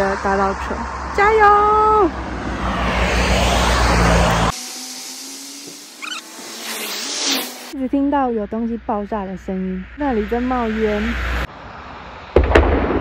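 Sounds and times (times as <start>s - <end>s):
car driving past: 0.0s - 7.8s.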